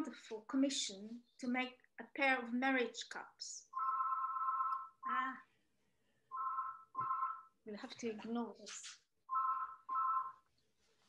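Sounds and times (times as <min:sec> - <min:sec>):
telephone ringing beeps: 0:03.8 - 0:05.1, 0:06.3 - 0:07.6, 0:09.3 - 0:10.5.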